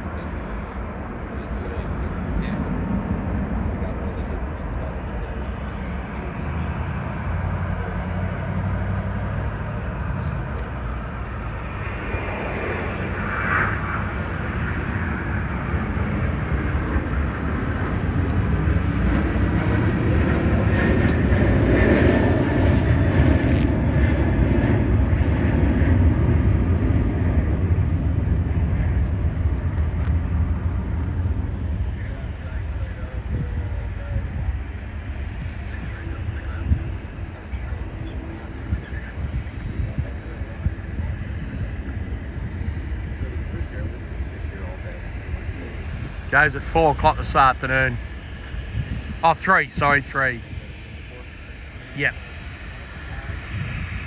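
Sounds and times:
jet engine rumble: 0.0 - 54.0.

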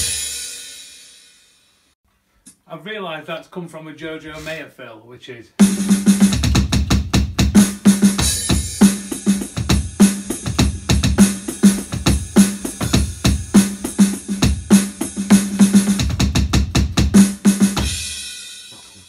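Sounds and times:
electronic drum fill: 5.6 - 19.0.

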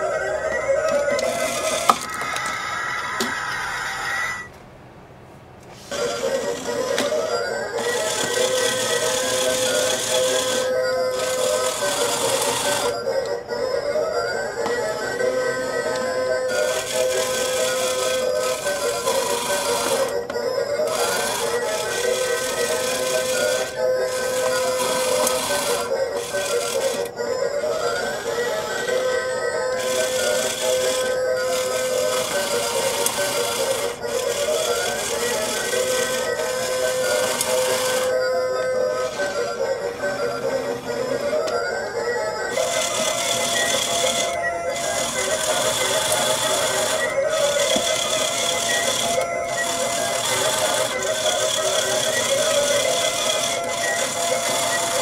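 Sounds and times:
crane game electronic tune: 0.0 - 4.5, 5.8 - 55.0.

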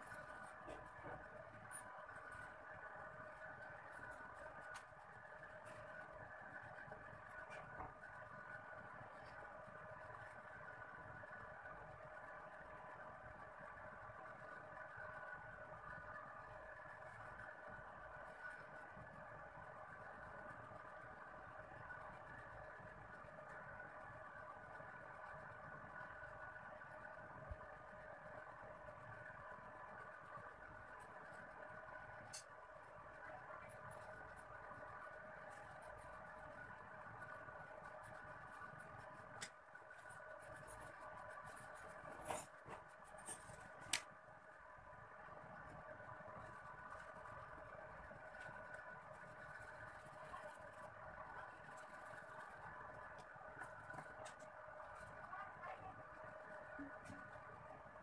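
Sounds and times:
faint steady hum: 0.0 - 58.0
pencil scratching on paper: 40.0 - 43.9.

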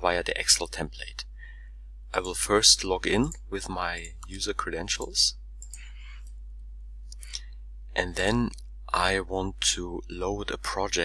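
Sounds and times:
steady low hum: 0.0 - 11.0
computer mouse click: 5.0 - 5.9.

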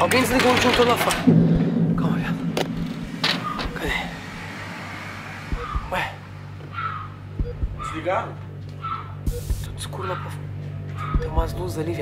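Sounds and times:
steady low hum: 1.2 - 11.8.

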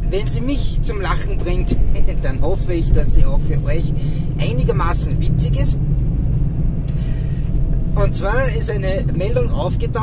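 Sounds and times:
vehicle road rumble: 0.0 - 10.0.

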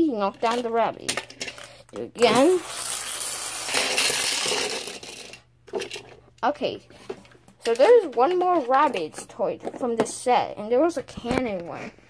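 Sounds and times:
toy mechanism whirring and rattling: 0.3 - 6.2
toy skittering on tabletop: 0.4 - 5.4.

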